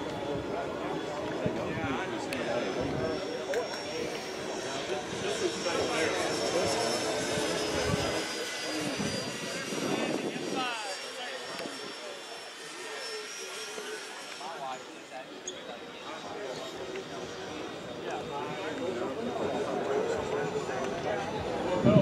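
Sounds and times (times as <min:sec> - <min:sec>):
model jet fan whine: 0:00.0 - 0:22.0
people talking: 0:00.0 - 0:22.0.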